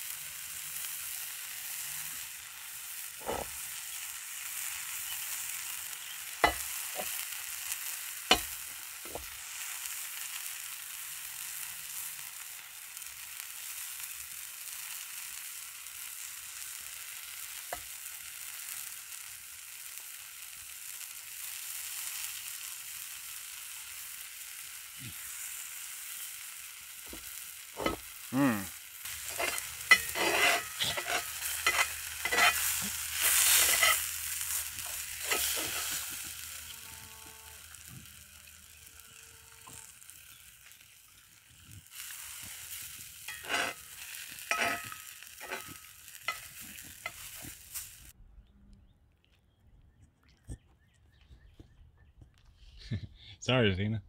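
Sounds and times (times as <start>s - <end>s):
batter sizzling in skillet: 0.0s - 48.2s
metal spatula scraping pan: 3.2s - 3.6s, 27.1s - 28.1s, 29.1s - 36.4s, 43.2s - 47.6s.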